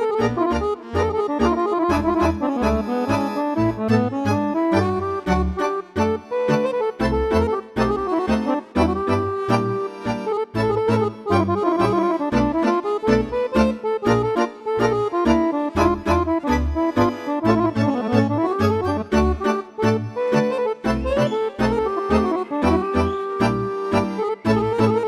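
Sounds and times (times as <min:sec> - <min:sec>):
piano accordion playing: 0:00.0 - 0:25.0.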